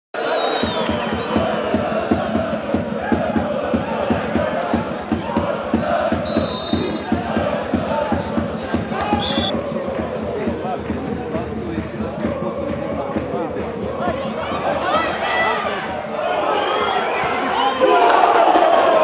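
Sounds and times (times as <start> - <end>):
football supporters chanting: 0.2 - 19.0
steady drumbeat: 0.6 - 16.2.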